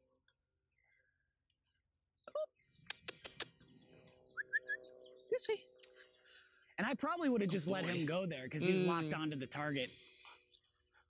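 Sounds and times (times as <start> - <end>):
sharp clicks: 2.8 - 3.6.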